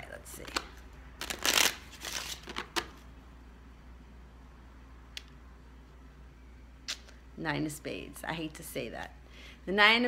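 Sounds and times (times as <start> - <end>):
low steady hum: 0.0 - 10.0
playing cards rustling: 1.2 - 3.0.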